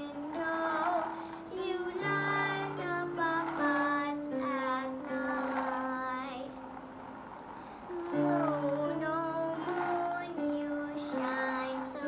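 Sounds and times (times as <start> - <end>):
girl singing: 0.0 - 6.7, 7.9 - 12.0.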